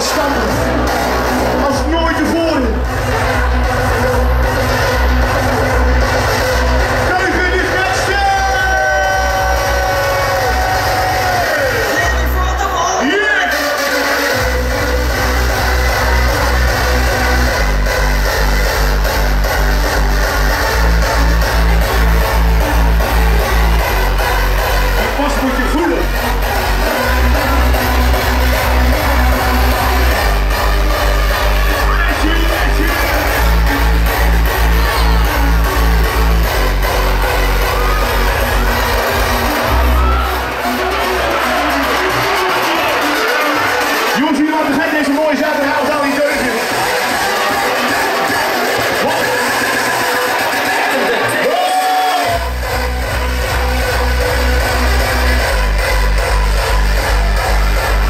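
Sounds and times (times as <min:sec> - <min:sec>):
crowd: 0:00.0 - 0:58.0
electronic dance music: 0:00.0 - 0:58.0
steady bass drum beat: 0:14.4 - 0:42.2, 0:52.3 - 0:58.0.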